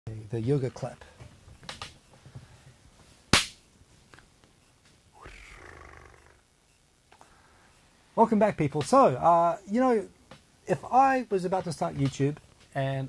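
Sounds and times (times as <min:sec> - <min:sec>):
soft rustle: 0:00.4 - 0:05.5.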